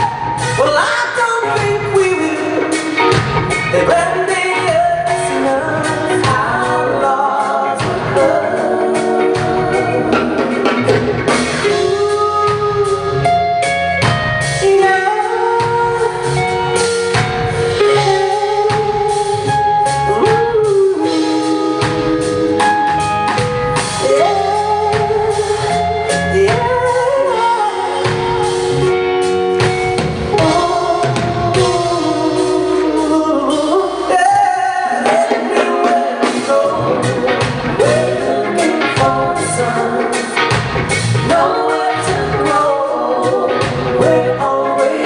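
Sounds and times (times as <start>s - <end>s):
live pop rock band: 0.0s - 45.0s
person singing long notes: 11.5s - 13.6s, 14.5s - 23.1s, 23.9s - 29.3s, 30.2s - 40.4s.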